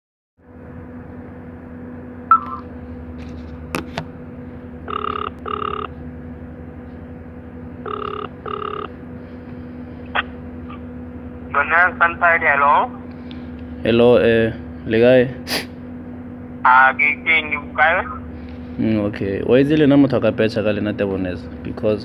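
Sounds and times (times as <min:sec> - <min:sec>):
steady line hum: 0:00.4 - 0:22.0
telephone ringback tone: 0:02.3 - 0:02.6, 0:04.8 - 0:05.9, 0:07.8 - 0:09.0.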